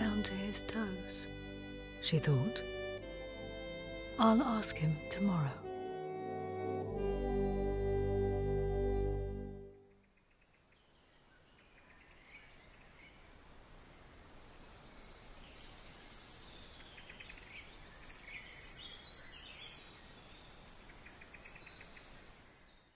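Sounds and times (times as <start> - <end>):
steady outdoor hiss: 0.0 - 6.2, 7.0 - 22.9.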